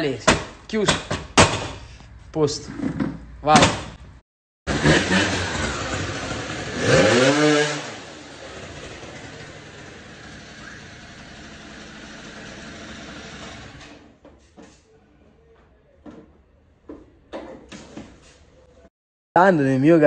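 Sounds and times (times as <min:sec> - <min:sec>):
scooter engine revving and idling: 0:04.7 - 0:13.8.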